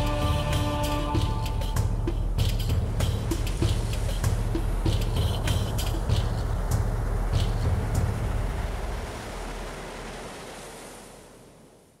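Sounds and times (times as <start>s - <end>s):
low regular beat: 0.0s - 8.4s
steady wash of noise: 1.7s - 12.0s.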